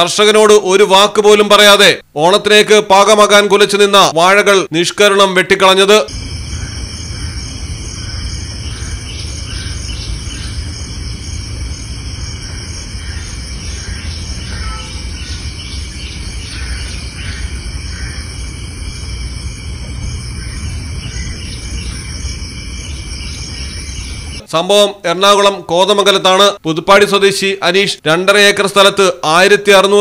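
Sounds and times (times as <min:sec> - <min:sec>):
insects chirring: 0:05.5 - 0:24.5
low rumble: 0:06.1 - 0:24.4.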